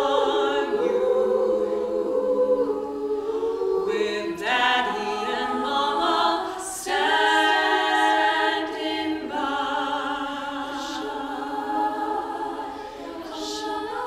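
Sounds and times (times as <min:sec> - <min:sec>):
women singing a cappella: 0:00.0 - 0:14.0.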